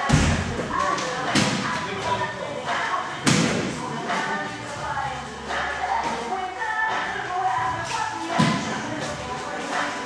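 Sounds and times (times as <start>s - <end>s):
basketball thud echoing in hall: 0.0s - 1.8s, 3.2s - 3.8s.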